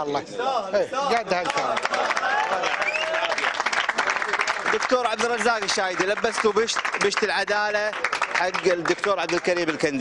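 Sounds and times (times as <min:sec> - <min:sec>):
crowd applauding: 0:01.3 - 0:10.0.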